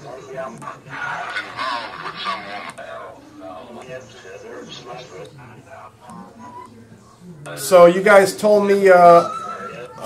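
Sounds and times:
radio static: 0.0s - 6.1s
snatches of radio music: 0.0s - 6.8s.

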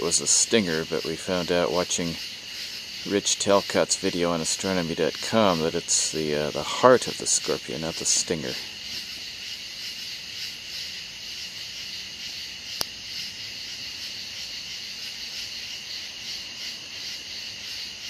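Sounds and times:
insects trilling: 0.0s - 18.0s.

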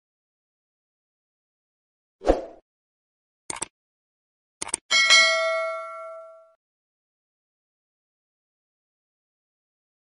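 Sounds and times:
bright bell ding: 4.9s - 6.6s.

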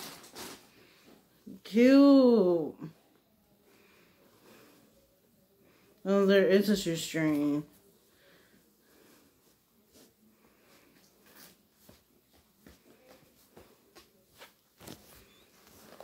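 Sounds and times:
rustling of shoe packaging: 0.0s - 1.2s, 13.9s - 16.0s.

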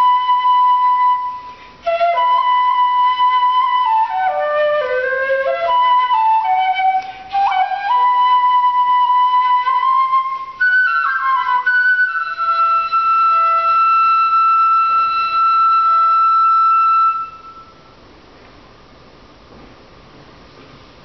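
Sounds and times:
bamboo flute melody: 0.0s - 17.9s.

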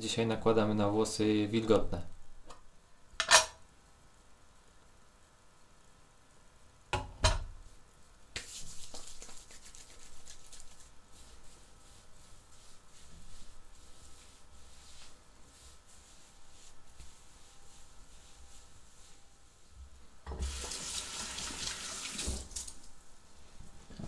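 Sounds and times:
hands rubbing pomade: 8.4s - 19.7s.

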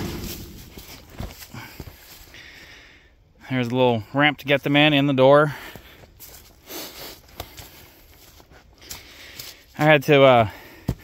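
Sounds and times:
footsteps on pine straw: 0.0s - 2.3s, 5.7s - 11.0s
man speaking: 3.4s - 5.6s, 9.8s - 10.5s.

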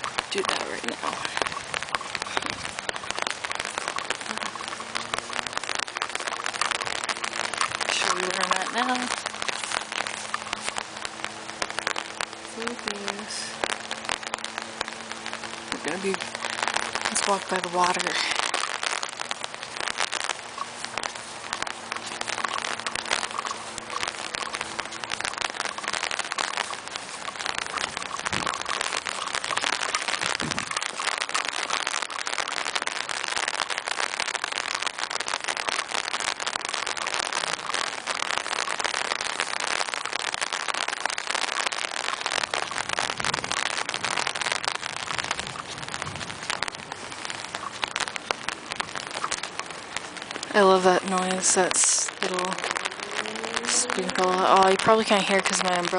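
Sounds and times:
rain on an umbrella: 0.0s - 55.9s.

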